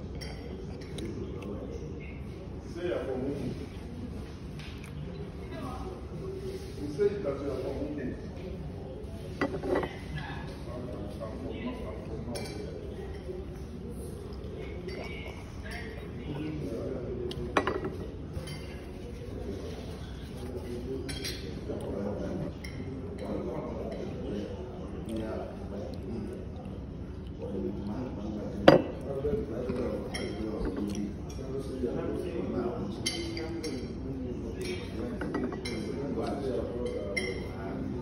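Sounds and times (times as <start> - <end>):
murmur of voices: 0.0 - 38.0.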